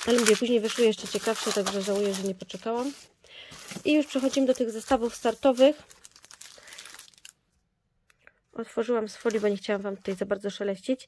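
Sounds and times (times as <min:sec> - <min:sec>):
plastic wrapping crinkling: 0:00.0 - 0:07.5.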